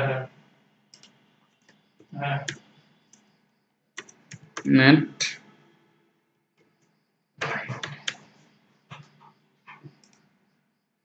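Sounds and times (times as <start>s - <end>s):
mouse and keyboard clicks: 0.9s - 3.3s, 4.0s - 4.7s.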